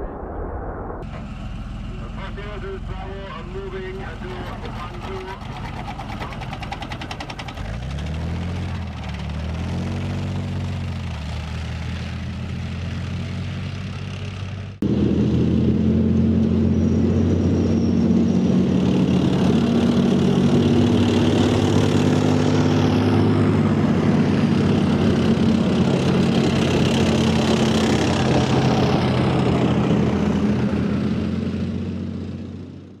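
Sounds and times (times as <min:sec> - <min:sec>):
heavy vehicle engine: 0:01.0 - 0:33.0
tank diesel engines driving by: 0:01.0 - 0:33.0.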